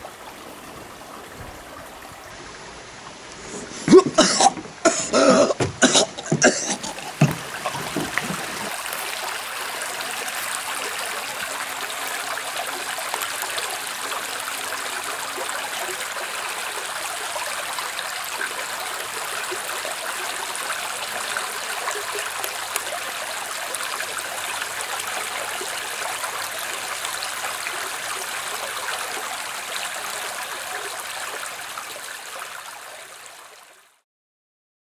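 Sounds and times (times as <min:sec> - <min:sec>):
creek water running: 0:00.0 - 0:34.0
person coughing or gasping: 0:03.6 - 0:08.0.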